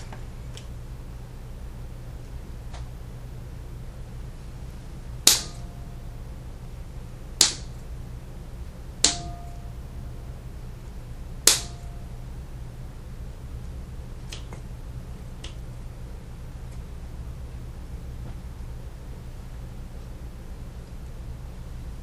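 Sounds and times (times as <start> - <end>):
scissors snipping stems: 14.3 - 14.6.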